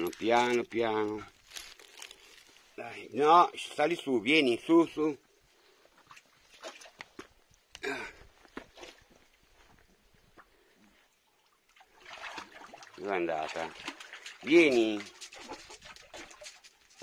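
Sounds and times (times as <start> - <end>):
rustle: 0.0 - 3.8.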